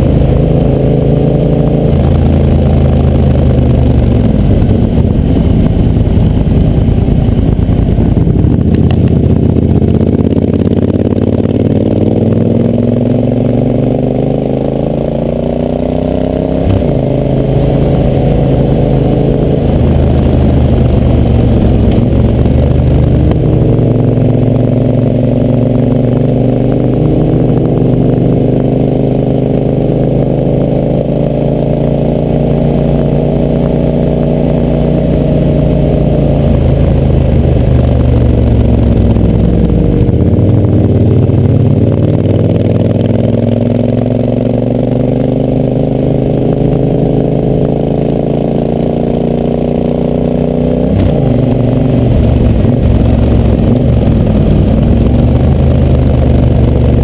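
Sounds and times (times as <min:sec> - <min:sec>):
motorcycle engine running at speed: 0:00.0 - 0:57.0.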